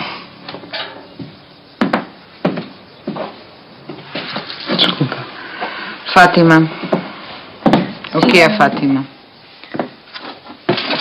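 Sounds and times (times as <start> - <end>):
sharp knocks on wood: 1.2 - 2.7, 6.8 - 8.3.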